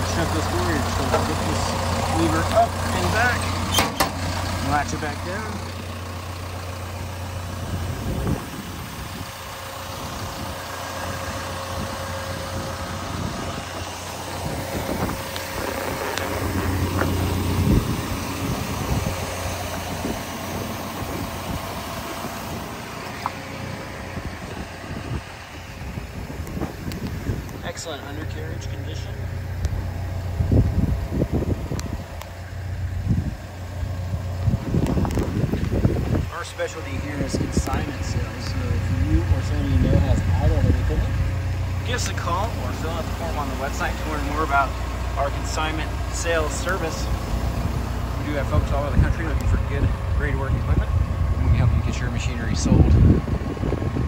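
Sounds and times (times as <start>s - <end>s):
excavator diesel engine idling: 0.0s - 54.0s
wind buffeting microphone: 6.9s - 28.0s, 29.1s - 43.7s, 46.6s - 54.0s.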